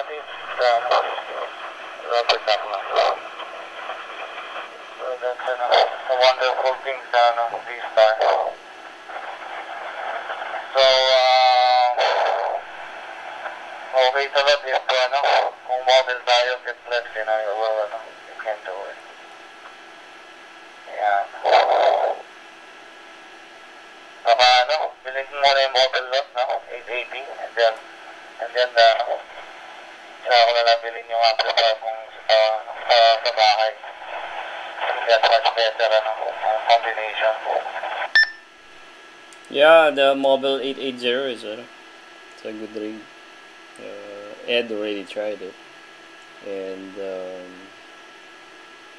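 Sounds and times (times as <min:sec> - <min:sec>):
radio spoken word: 0:00.0 - 0:19.2, 0:20.8 - 0:22.4, 0:24.2 - 0:38.1, 0:39.4 - 0:41.7, 0:42.4 - 0:43.1, 0:43.8 - 0:45.6, 0:46.4 - 0:47.7
radio channel hiss: 0:00.0 - 0:48.9.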